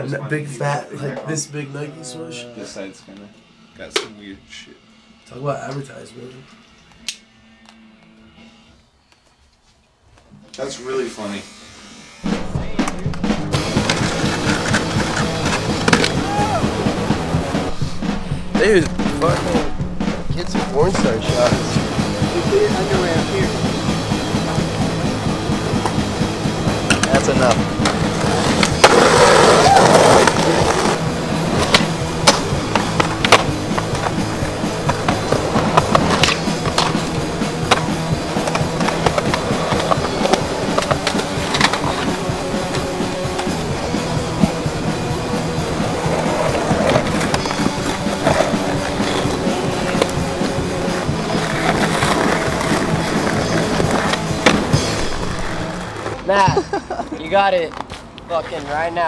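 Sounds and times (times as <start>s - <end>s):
music: 0.0s - 59.0s
skateboard wheels rolling on concrete: 12.8s - 17.8s, 20.9s - 59.0s.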